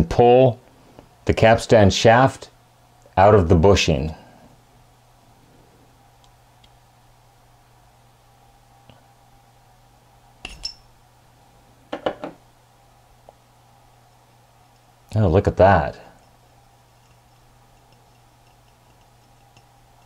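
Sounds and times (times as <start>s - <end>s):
metallic clink: 10.4s - 10.9s.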